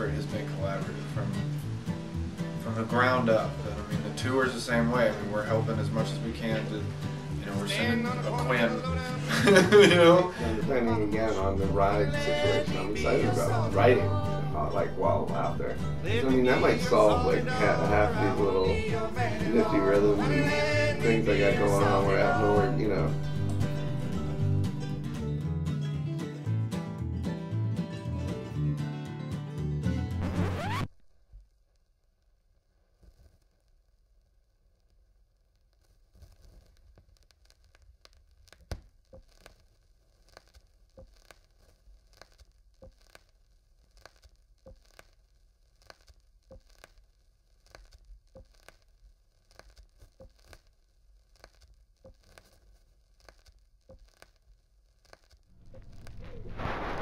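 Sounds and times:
rustling noise: 35.7 - 57.0
soft ticks: 40.3 - 43.3, 43.9 - 45.2, 49.5 - 50.7, 53.2 - 54.4
faint low rumble: 55.4 - 57.0.

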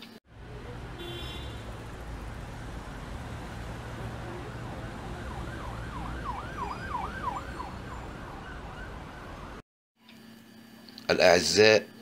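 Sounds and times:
siren rising and falling rapidly: 0.3 - 9.6.

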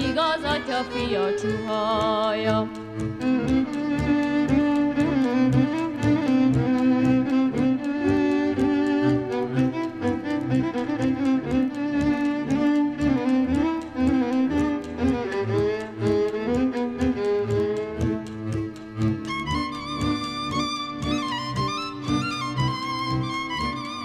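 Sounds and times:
bowed cello and double bass: 0.0 - 24.0
fiddle melody: 0.0 - 24.0.

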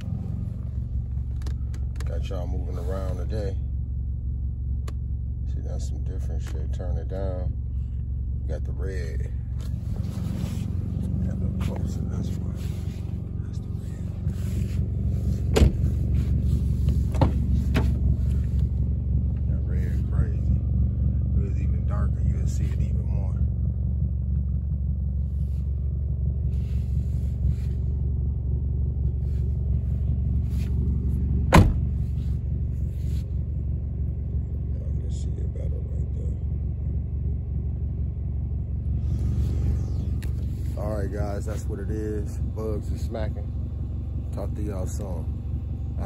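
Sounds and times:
car engine idling: 0.0 - 46.0.

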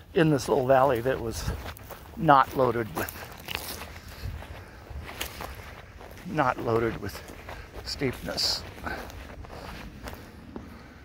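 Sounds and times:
soft footsteps on asphalt: 0.0 - 11.0.

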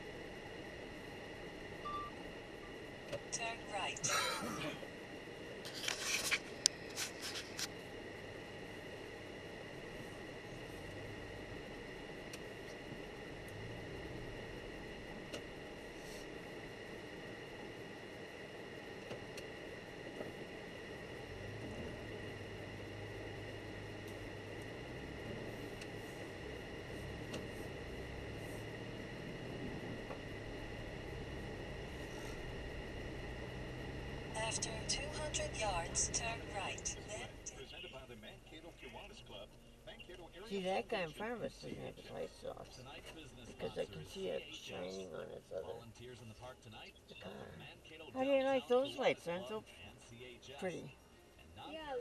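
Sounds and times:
faint high whine: 0.0 - 52.0
car engine and tyre hum: 9.8 - 16.3, 20.0 - 37.6.

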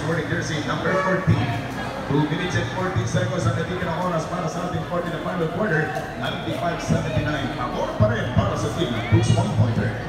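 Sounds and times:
spectators talking indistinctly: 0.0 - 10.0.

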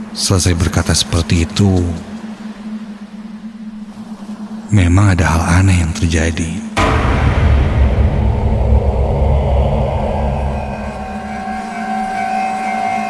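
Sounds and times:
deep boom with low rumble: 6.8 - 12.2
droning music: 6.8 - 13.0
high sustained tones: 6.8 - 13.0.

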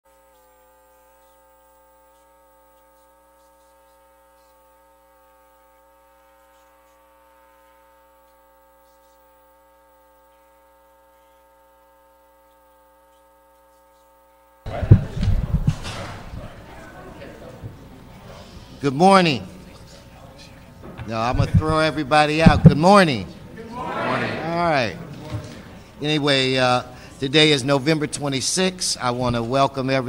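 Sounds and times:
electrical mains hum: 0.1 - 30.0.

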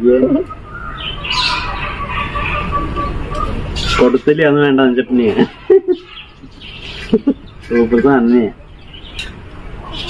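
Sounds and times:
birds chirping: 0.0 - 10.0
low rumbling noise: 0.0 - 10.0.

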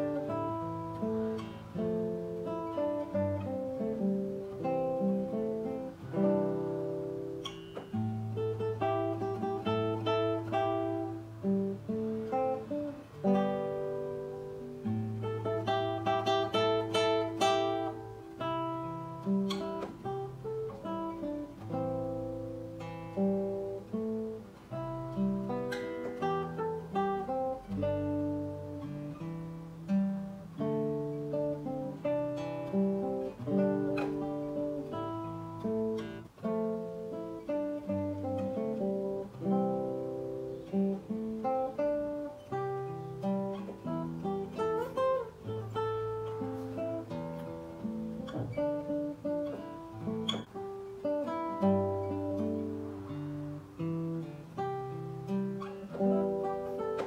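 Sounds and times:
fingerpicked classical guitar: 0.0 - 57.0.

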